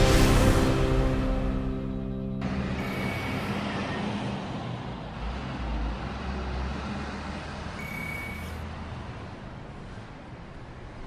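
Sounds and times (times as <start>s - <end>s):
theme music: 0.0s - 4.8s
road vehicle rumble: 0.0s - 11.0s.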